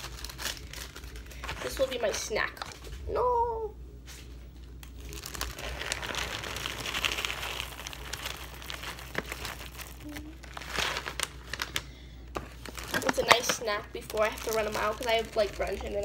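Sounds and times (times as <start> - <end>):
plastic packaging crinkling: 0.0 - 3.0, 4.6 - 16.0.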